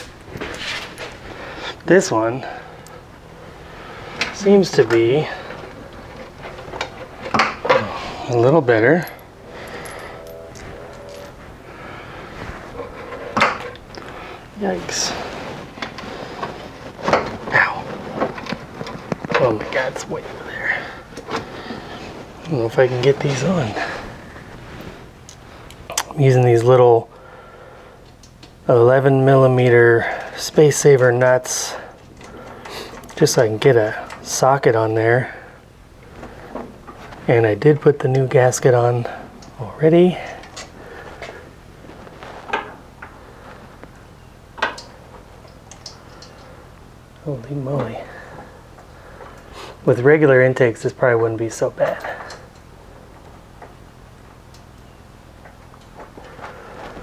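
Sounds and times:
man straining and muttering: 0:07.6 - 0:15.4, 0:17.3 - 0:21.7, 0:22.4 - 0:24.4, 0:25.8 - 0:27.2.

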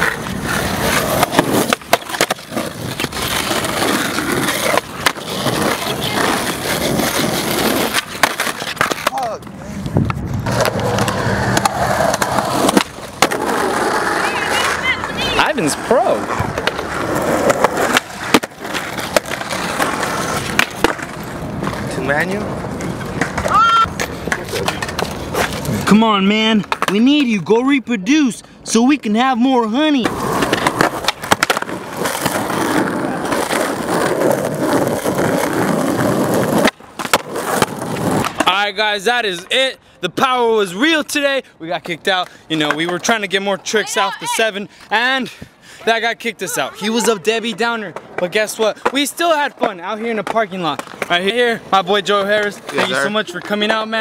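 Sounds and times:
skateboard popping and landing: 0:00.0 - 0:15.5, 0:16.1 - 0:25.9, 0:26.6 - 0:27.3, 0:30.0 - 0:38.6, 0:47.4 - 0:51.5
skateboard wheels rolling on asphalt: 0:00.0 - 0:54.0
voices: 0:14.0 - 0:16.4, 0:38.4 - 0:54.0.

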